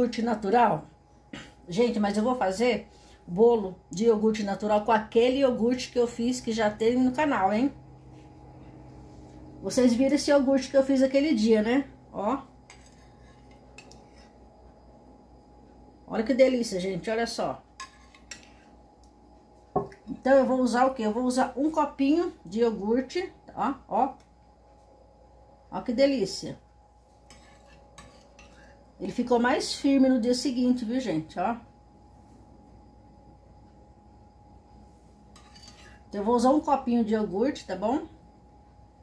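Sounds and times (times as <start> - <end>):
metal ladle scraping glass bowl: 12.7 - 14.4, 17.8 - 18.7, 27.2 - 28.8, 35.4 - 36.0.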